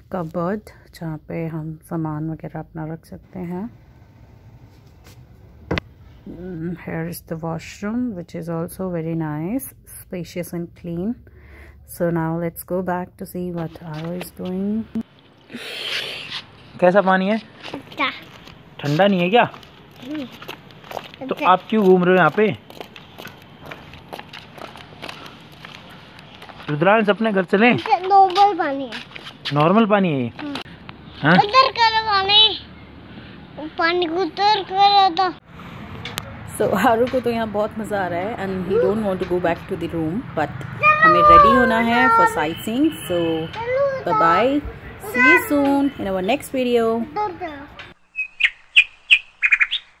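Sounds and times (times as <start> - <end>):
person speaking: 40.8 - 46.3
bird chirping: 47.8 - 50.0.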